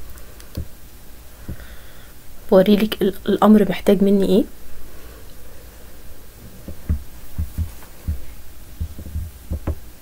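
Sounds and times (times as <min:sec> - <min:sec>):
faint steady hum: 0:00.0 - 0:10.0
soft low thumps: 0:06.4 - 0:09.8.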